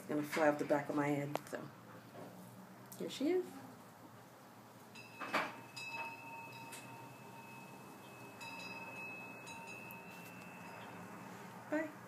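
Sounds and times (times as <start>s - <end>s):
wind chimes ringing: 4.9s - 11.4s.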